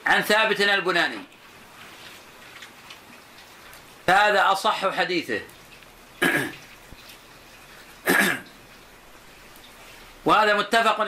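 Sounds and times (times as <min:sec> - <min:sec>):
man coughing: 0:06.2 - 0:06.6, 0:08.0 - 0:08.5.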